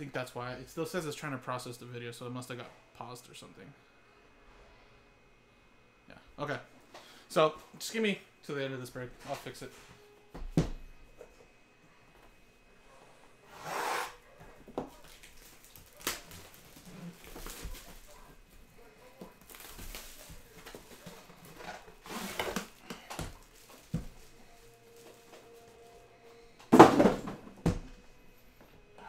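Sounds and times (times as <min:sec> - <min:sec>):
plastic shrink-wrap tearing: 0:15.0 - 0:18.2, 0:19.4 - 0:24.0.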